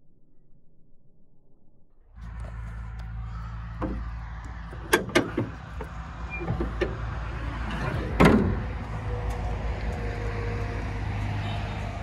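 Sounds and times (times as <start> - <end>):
diesel engine idling: 2.2 - 12.0
van bonnet slammed shut: 3.8 - 8.8.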